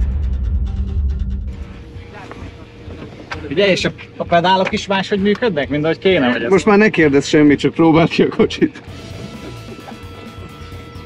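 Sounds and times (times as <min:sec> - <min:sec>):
deep rumble: 0:00.0 - 0:03.3.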